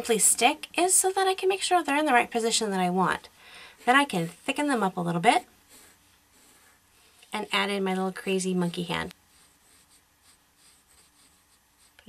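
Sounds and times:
pencil scratching on paper: 0:05.7 - 0:07.9, 0:08.5 - 0:12.0.

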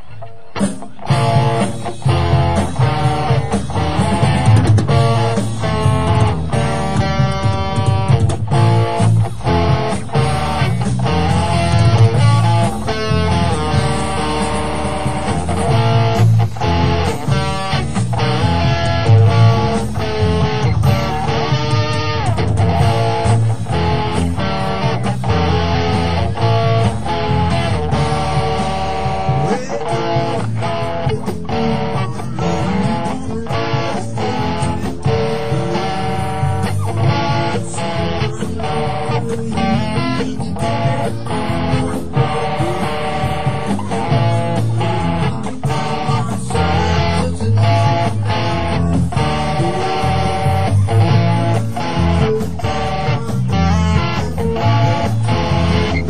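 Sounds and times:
bass guitar: 0:00.0 - 0:56.0
electric guitar: 0:00.0 - 0:56.0.

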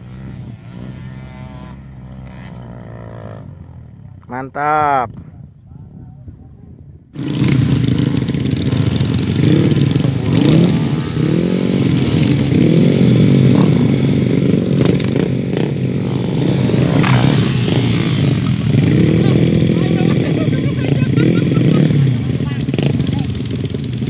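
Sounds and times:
motorcycle engine revving: 0:00.0 - 0:04.6, 0:07.2 - 0:24.0.

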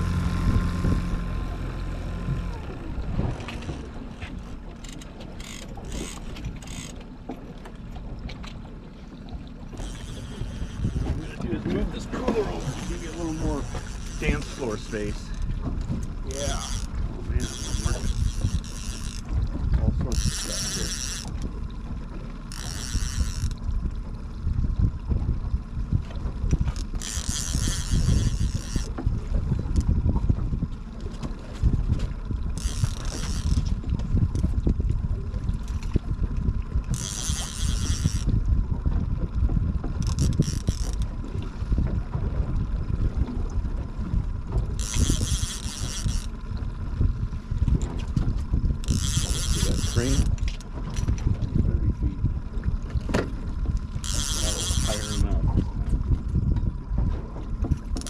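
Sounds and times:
fishing reel whirring: 0:00.0 - 0:07.1, 0:09.6 - 0:11.4, 0:12.5 - 0:24.3, 0:26.3 - 0:30.0, 0:32.0 - 0:34.8, 0:36.8 - 0:39.0, 0:39.9 - 0:41.4, 0:42.1 - 0:51.7, 0:53.1 - 0:56.5, 0:57.7 - 0:58.0
wind and water rumble: 0:00.0 - 0:58.0.

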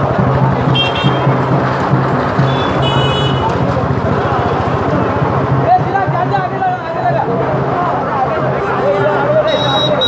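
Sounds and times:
voices: 0:00.0 - 0:10.0.

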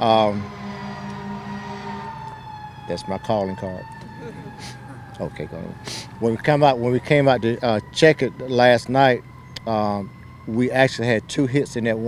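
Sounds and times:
fire engine siren: 0:00.0 - 0:12.0.

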